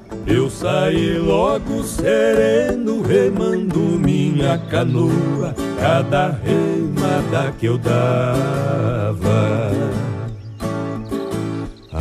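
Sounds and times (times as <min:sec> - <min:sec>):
acoustic guitar phrase: 0:00.0 - 0:12.0
person singing: 0:00.2 - 0:10.4.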